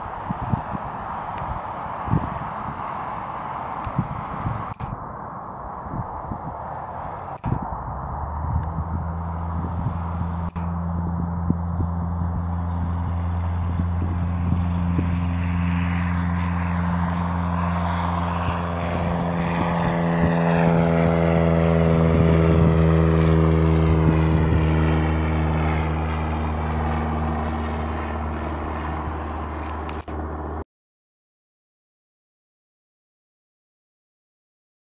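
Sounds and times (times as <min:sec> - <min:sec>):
airplane propeller engine at take-off: 0:00.0 - 0:30.6.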